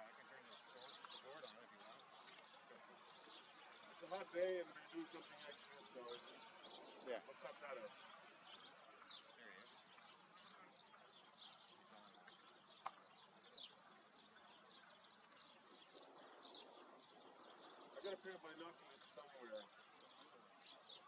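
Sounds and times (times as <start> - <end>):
small birds chirping: 0.0 - 21.0.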